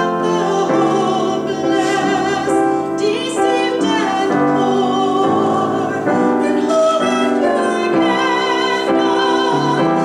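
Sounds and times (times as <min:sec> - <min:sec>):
piano chords: 0:00.0 - 0:10.0
woman singing: 0:00.0 - 0:10.0.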